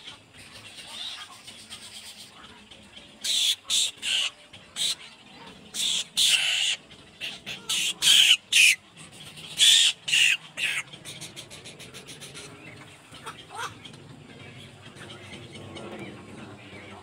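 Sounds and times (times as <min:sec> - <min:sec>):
nestlings squawking begging calls: 0:03.2 - 0:13.9.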